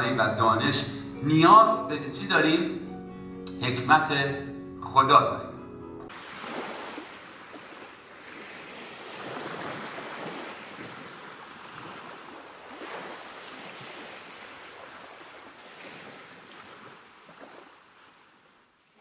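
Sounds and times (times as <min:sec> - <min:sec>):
ocean waves rushing: 0:06.1 - 0:18.4.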